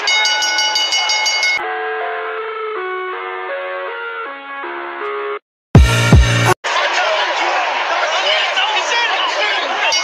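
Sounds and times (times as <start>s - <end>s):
ring bell rung rapidly: 0.0s - 1.6s
music with held chords: 1.6s - 6.6s.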